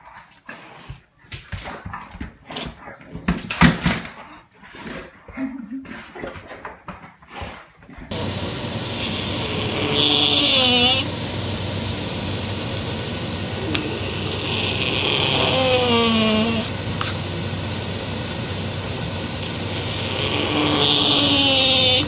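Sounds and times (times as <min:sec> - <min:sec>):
dog scuffing on rug: 0:00.0 - 0:08.1
steady hiss: 0:07.2 - 0:22.0
wavering whine: 0:08.1 - 0:22.0.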